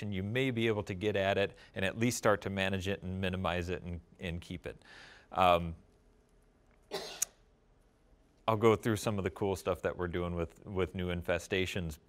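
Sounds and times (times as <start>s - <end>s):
cough: 6.9s - 7.4s.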